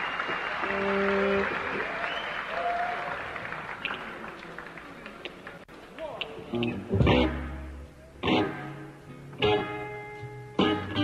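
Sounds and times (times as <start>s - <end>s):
audience applauding: 0.0s - 6.2s.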